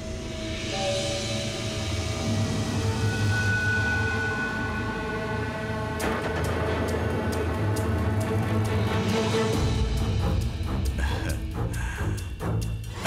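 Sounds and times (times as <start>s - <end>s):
dramatic score held tones: 0.0s - 13.0s.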